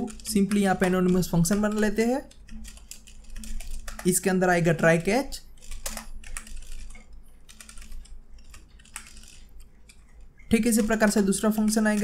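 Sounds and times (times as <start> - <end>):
computer keyboard key clicks: 0.0 - 4.1.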